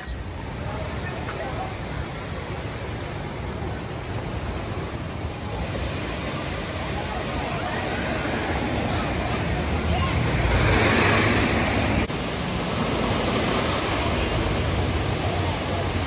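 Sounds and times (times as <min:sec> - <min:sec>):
people's voices: 0:00.0 - 0:16.0
water rushing: 0:00.0 - 0:16.0.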